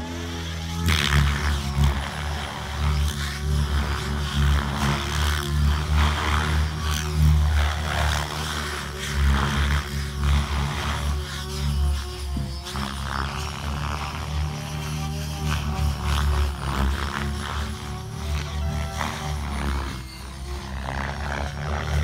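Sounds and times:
radio-controlled helicopter flying: 0.0 - 22.0.

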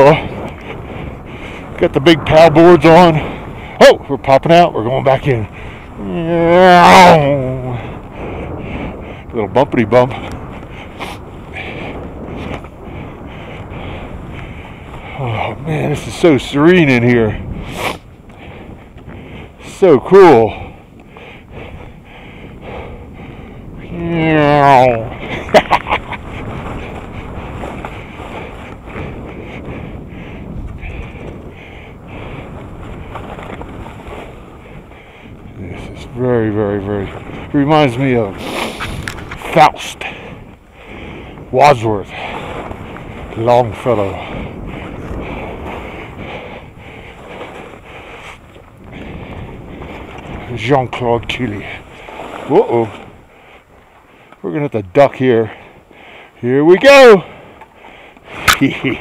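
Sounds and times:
wind rumble on microphone: 0.0 - 59.0
skis swishing through snow: 10.9 - 12.9, 14.1 - 18.1, 25.2 - 29.6, 32.2 - 34.9, 35.7 - 40.2, 41.8 - 54.0.

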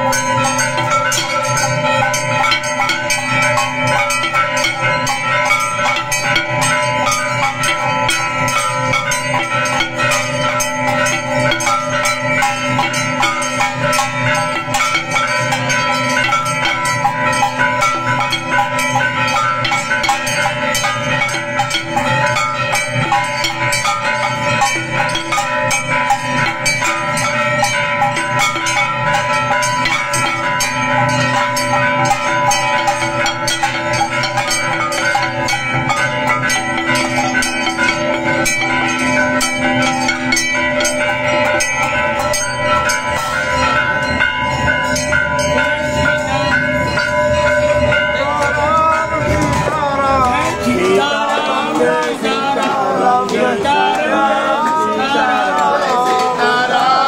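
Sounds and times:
bells clanging rapidly: 0.0 - 57.0.

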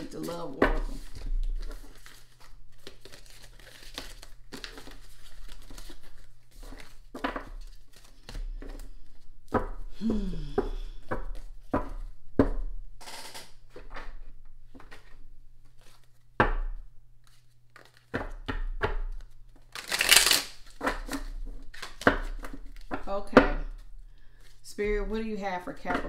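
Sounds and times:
cards shuffling: 0.0 - 9.6, 14.8 - 16.3, 17.2 - 23.0.

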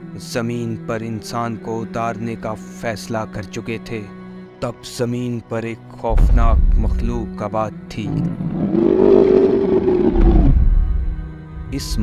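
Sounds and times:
background music: 0.0 - 12.0
dinosaur roar: 8.1 - 11.0.

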